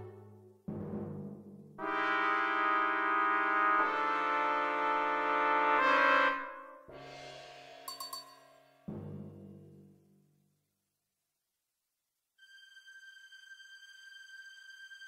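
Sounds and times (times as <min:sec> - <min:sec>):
orchestral brass chords: 0:00.0 - 0:01.0, 0:01.8 - 0:07.1.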